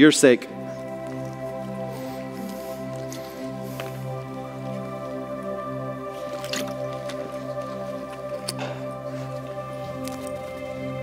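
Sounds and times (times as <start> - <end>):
soft background music chord: 0.0 - 11.0.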